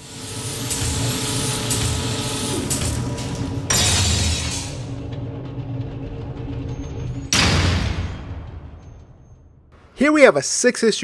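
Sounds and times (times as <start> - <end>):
mechanical whirring with low hum: 0.0 - 9.0.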